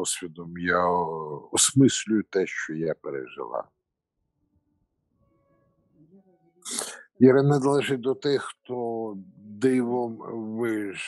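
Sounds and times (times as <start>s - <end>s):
person speaking: 0.0s - 3.6s, 6.7s - 11.0s.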